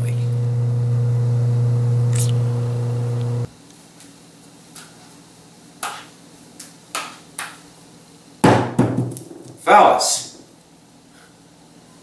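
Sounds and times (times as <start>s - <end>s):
steady held hum: 0.0s - 3.6s.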